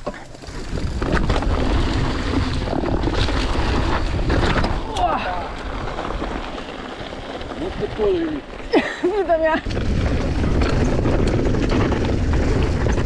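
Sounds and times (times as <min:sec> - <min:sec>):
bike rattling over bumps: 0:00.0 - 0:13.0
tyre noise on gravel: 0:00.0 - 0:13.0
wind on microphone: 0:09.6 - 0:13.0.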